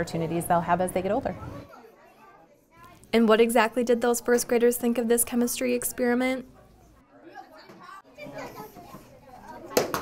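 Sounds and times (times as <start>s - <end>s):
young children chattering: 1.3s - 3.2s, 6.4s - 10.0s.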